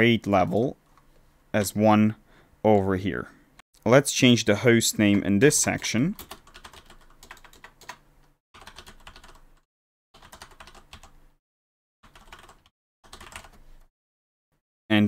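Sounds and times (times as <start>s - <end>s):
keyboard typing: 6.2s - 9.6s, 10.2s - 11.2s, 12.0s - 13.6s.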